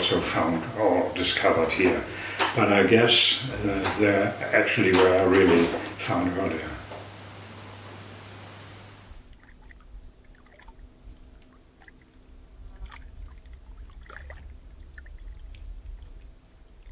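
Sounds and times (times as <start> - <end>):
short splashes: 9.1 - 16.3
water lapping against rocks: 9.2 - 16.9.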